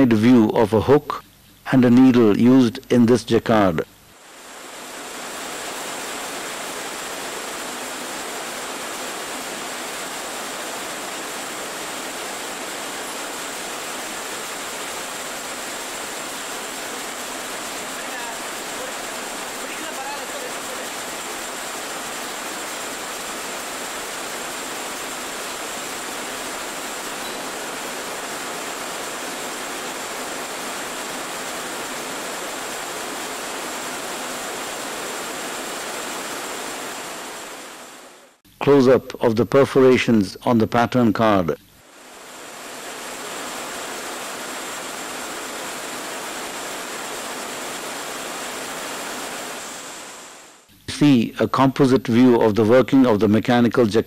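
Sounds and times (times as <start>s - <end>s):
faint high-pitched whine: 0.0s - 54.0s
steady film soundtrack hiss: 0.0s - 54.0s.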